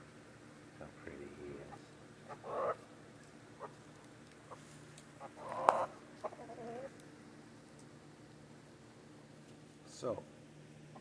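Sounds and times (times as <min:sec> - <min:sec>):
chickens clucking: 0:01.6 - 0:02.9, 0:03.6 - 0:03.8, 0:04.4 - 0:07.0.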